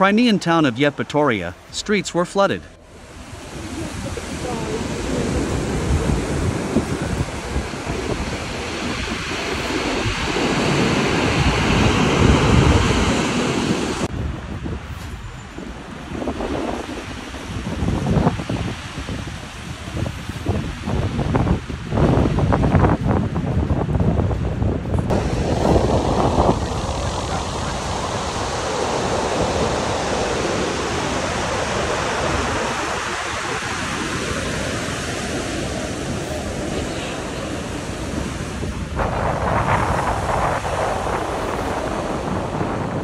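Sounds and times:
storm surf crashing: 0.0s - 43.0s
wind buffeting microphone: 2.7s - 43.0s.

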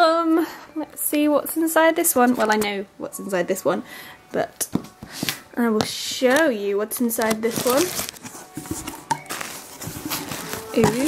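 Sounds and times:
paper packing rustling: 7.0s - 11.0s
cardboard box being opened: 7.3s - 11.0s.

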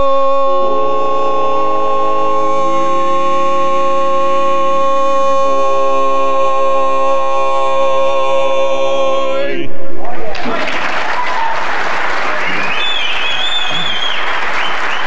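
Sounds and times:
men singing a cappella: 0.0s - 9.7s.

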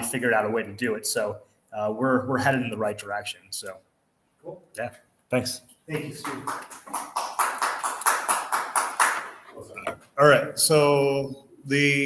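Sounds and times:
hand clapping: 5.9s - 9.5s.

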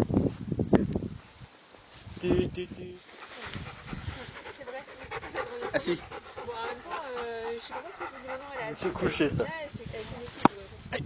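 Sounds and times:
dog panting: 3.0s - 9.5s.

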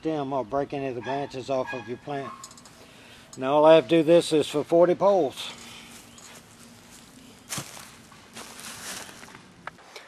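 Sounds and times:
footsteps on dry leaves: 5.4s - 9.5s.

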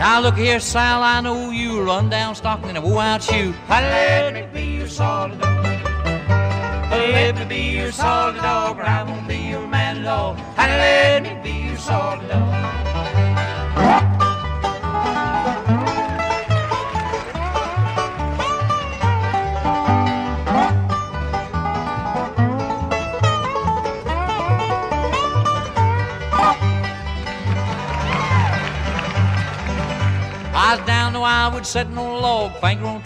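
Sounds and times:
acoustic guitar: 0.0s - 33.0s
banjo: 0.0s - 33.0s
sliding lead notes: 0.0s - 33.0s
upright bass beat: 0.0s - 33.0s
person singing: 6.9s - 12.7s.

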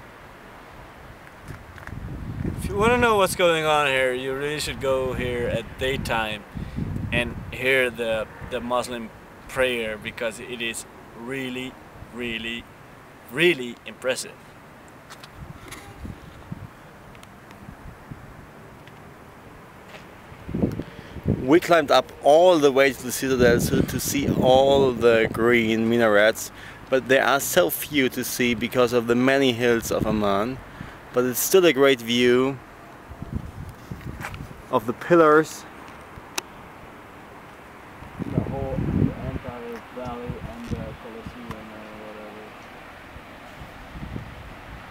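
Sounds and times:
wind rumble on microphone: 1.1s - 3.5s, 4.5s - 8.8s, 15.3s - 16.9s, 17.6s - 18.4s, 20.4s - 22.2s, 23.2s - 25.8s, 33.0s - 34.7s, 38.0s - 42.0s, 43.1s - 44.9s
faint night background noise: 7.2s - 16.1s, 34.7s - 43.6s.

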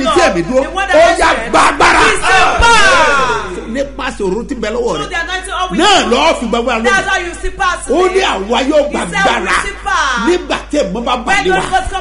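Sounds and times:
man shouting: 0.0s - 4.0s, 4.6s - 12.0s.

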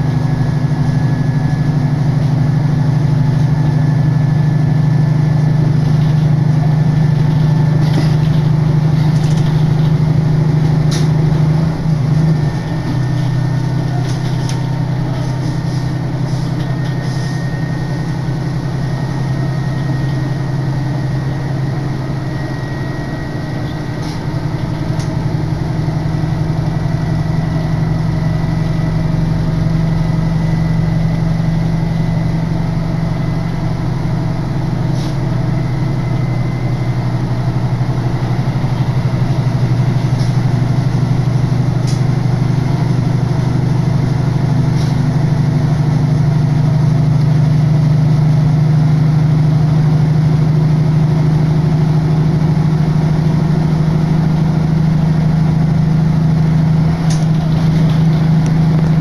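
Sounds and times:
diesel railcar engine drone: 0.0s - 59.0s.

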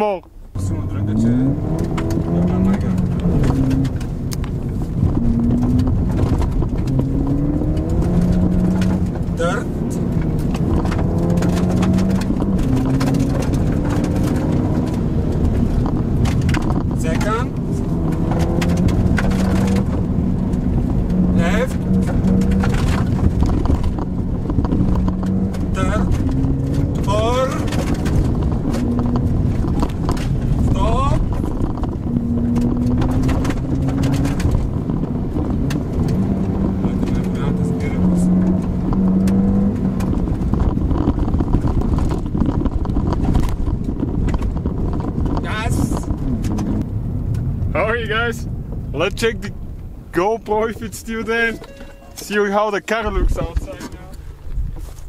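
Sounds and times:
car engine pulling through gears: 0.3s - 55.0s
tyres rumbling on gravel: 0.4s - 55.0s.

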